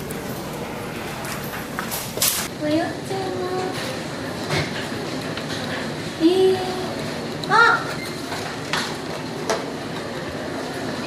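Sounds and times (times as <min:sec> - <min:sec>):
busy shop hubbub: 0:00.0 - 0:11.0.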